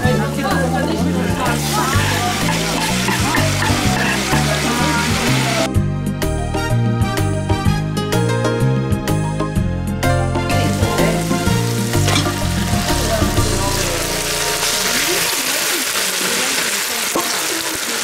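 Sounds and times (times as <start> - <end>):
food sizzling in oil: 0.0 - 5.7, 10.5 - 18.0
background music: 0.0 - 16.0.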